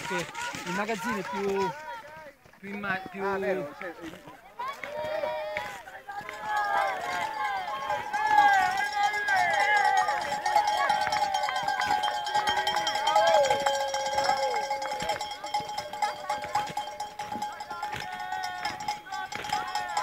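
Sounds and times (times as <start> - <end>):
spectators cheering and shouting: 4.5 - 20.0
cowbells ringing: 6.2 - 20.0.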